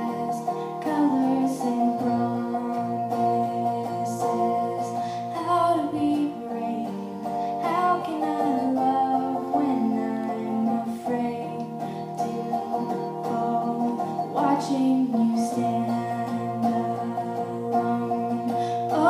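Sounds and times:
strummed guitar chords: 0:00.0 - 0:19.0
woman singing: 0:00.0 - 0:19.0.

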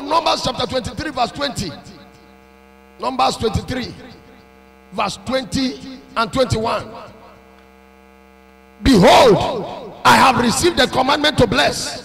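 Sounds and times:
man speaking: 0:00.0 - 0:01.9, 0:03.0 - 0:04.2, 0:04.9 - 0:07.2, 0:08.8 - 0:12.0
electrical mains hum: 0:00.0 - 0:12.0.

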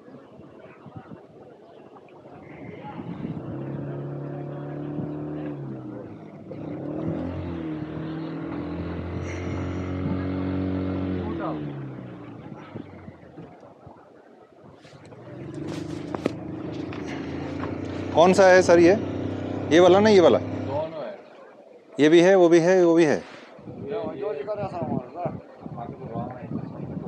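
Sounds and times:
motor engine passing by: 0:02.4 - 0:13.6, 0:14.9 - 0:21.2.

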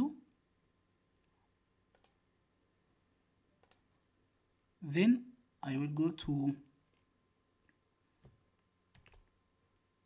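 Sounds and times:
computer mouse clicks: 0:01.9 - 0:02.2, 0:03.6 - 0:03.9, 0:05.7 - 0:06.1, 0:08.2 - 0:09.4.

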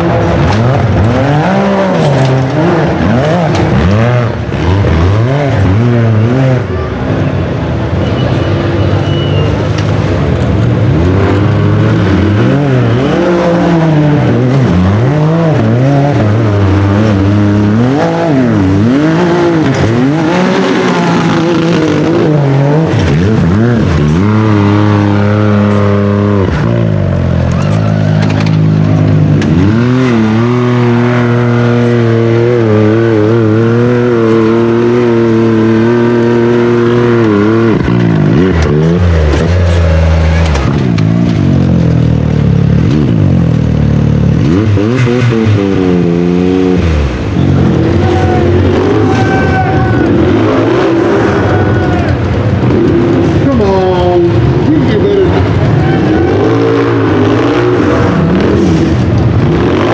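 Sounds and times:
engine revving hard: 0:00.0 - 0:06.8, 0:10.7 - 0:28.0, 0:28.7 - 0:41.6, 0:44.2 - 0:59.9.

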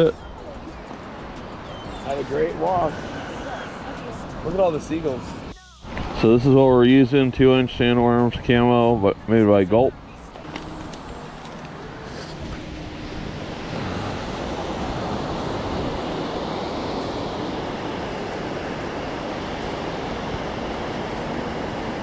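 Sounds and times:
ocean surf: 0:00.0 - 0:22.0
wind: 0:00.0 - 0:22.0.

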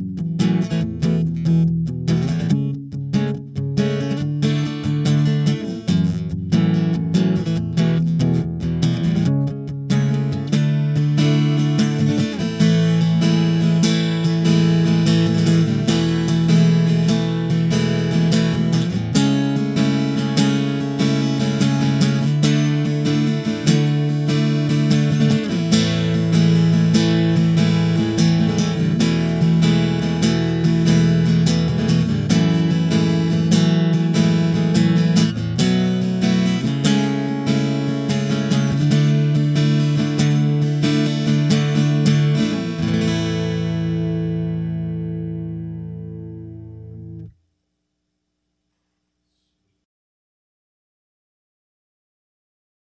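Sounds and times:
acoustic guitar chords: 0:00.0 - 0:47.4.

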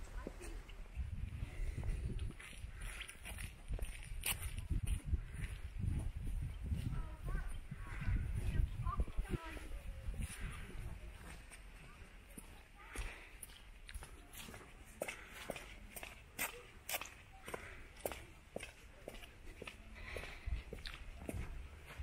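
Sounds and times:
faint distant voices: 0:00.0 - 0:22.0.

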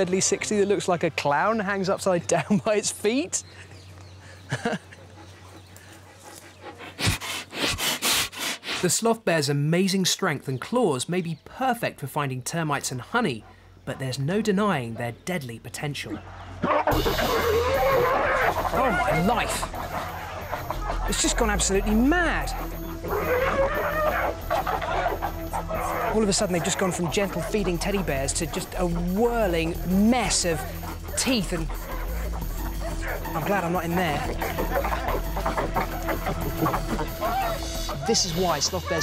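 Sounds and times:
bear snuffling breaths: 0:04.1 - 0:08.9, 0:17.8 - 0:21.6, 0:30.4 - 0:38.2
bears growling: 0:16.0 - 0:39.0
bears short pitched calls: 0:16.6 - 0:27.1, 0:34.2 - 0:39.0.

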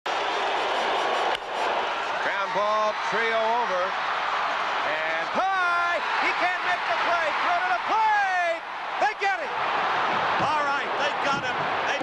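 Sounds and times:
ballpark crowd noise: 0:00.0 - 0:12.0.

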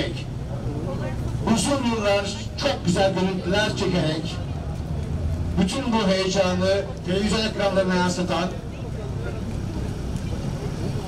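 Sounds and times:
faint crowd voices: 0:00.0 - 0:11.0
low outdoor rumble: 0:00.0 - 0:11.0.

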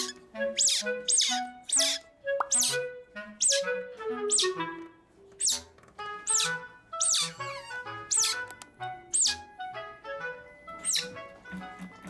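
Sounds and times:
baby otter squeaking: 0:00.0 - 0:03.7, 0:04.3 - 0:04.6, 0:05.4 - 0:08.5, 0:09.1 - 0:09.5, 0:10.8 - 0:11.2
background music: 0:00.0 - 0:12.0.

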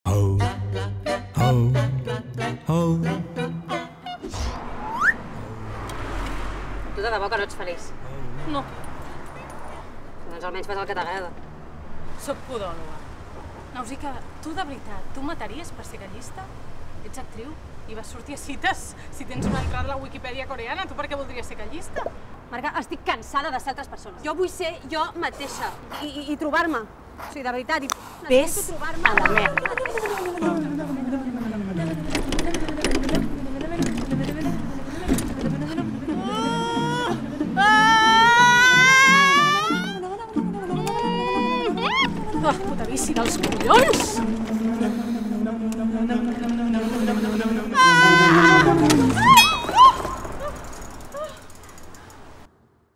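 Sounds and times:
outdoor background noise: 0:00.4 - 0:52.9
upward gliding whistle tone: 0:04.8 - 0:05.3
voice holding wavering note: 0:45.4 - 0:49.2
bicycle chain clicking and rattling: 0:49.3 - 0:52.5.

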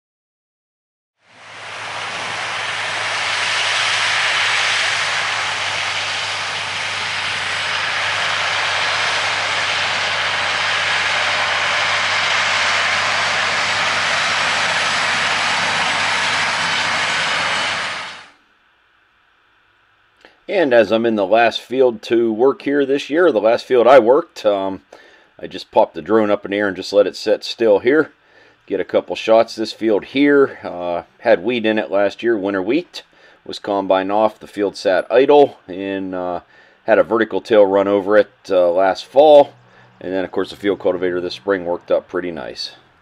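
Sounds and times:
broad rush of noise: 0:01.3 - 0:18.4
tractor engine hum: 0:01.3 - 0:18.4, 0:36.9 - 0:43.0.

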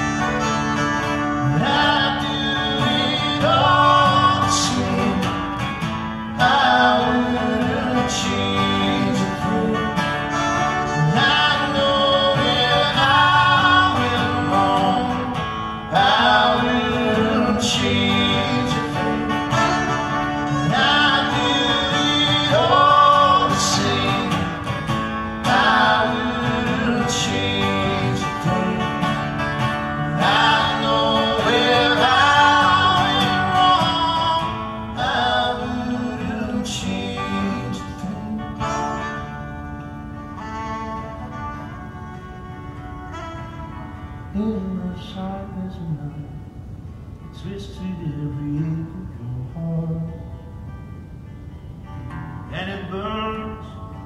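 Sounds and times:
fiddle melody: 0:00.0 - 0:02.7
strummed acoustic guitar: 0:00.0 - 0:54.0.

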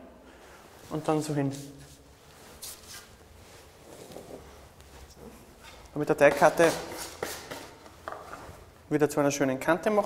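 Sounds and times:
soft rustle: 0:00.4 - 0:05.9.

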